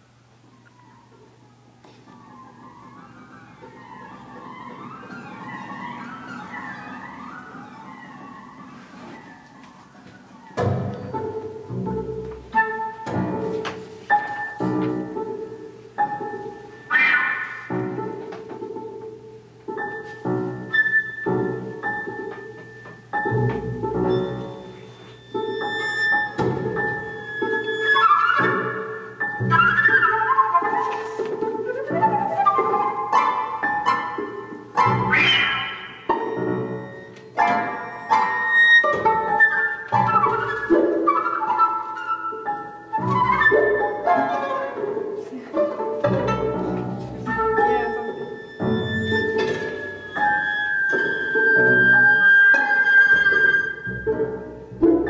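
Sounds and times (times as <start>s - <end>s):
contemporary classical string music: 0.0s - 55.0s.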